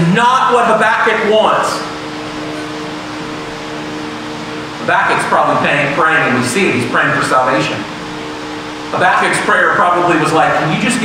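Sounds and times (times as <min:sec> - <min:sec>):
low two-note hum: 0:00.0 - 0:11.0
room hiss: 0:00.0 - 0:11.0.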